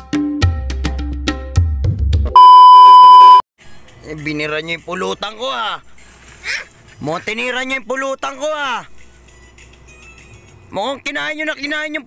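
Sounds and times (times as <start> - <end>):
high-pitched electronic beep: 2.4 - 3.4.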